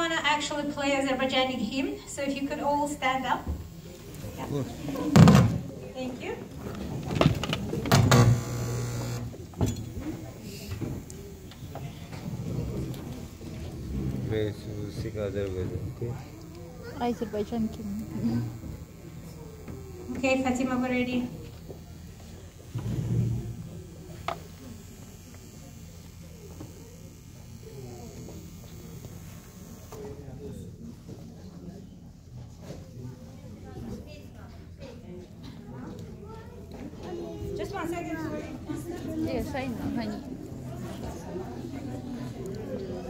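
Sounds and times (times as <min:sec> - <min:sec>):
steady low hum: 0:00.0 - 0:30.9
faint indistinct voices: 0:00.0 - 0:43.0
chair scraping across floor: 0:22.7 - 0:23.5.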